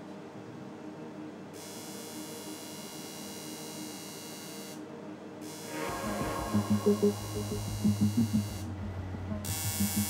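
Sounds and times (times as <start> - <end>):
steady electronic buzz: 5.4 - 10.0
high-pitched buzzing: 5.5 - 10.0
low hum: 5.6 - 10.0.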